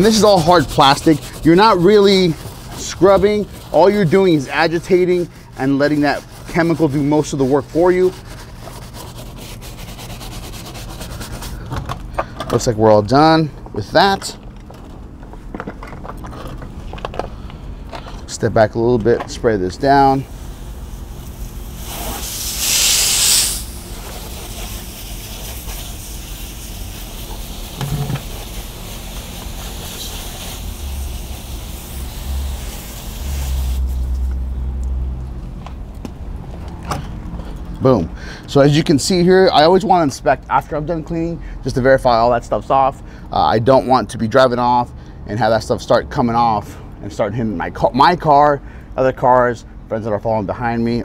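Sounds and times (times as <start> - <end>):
stiff brush scrubbing plastic: 0.0 - 11.7, 21.0 - 34.2
hiss of water spray: 20.3 - 34.1.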